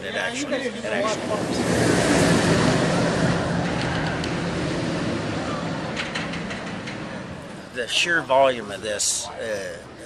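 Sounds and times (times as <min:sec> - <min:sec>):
roller coaster rumbling on track: 0:00.0 - 0:09.3.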